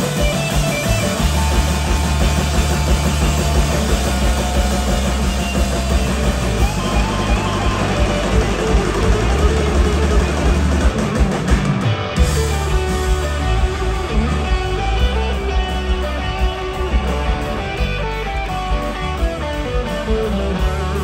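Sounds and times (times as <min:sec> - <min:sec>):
rock band playing: 0:00.0 - 0:21.0.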